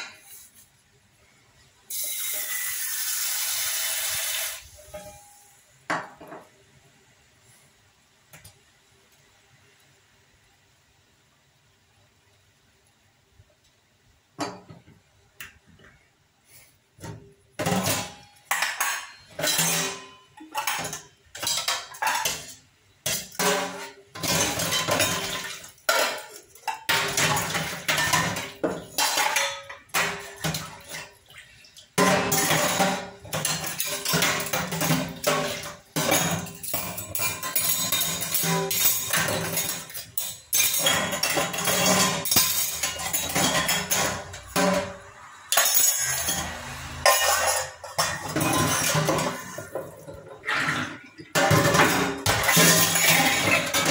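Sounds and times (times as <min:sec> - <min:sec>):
steel dishes clanking in sink: 0:17.0 - 0:31.2, 0:32.0 - 0:53.9
scrubbing dishes: 0:17.0 - 0:53.9.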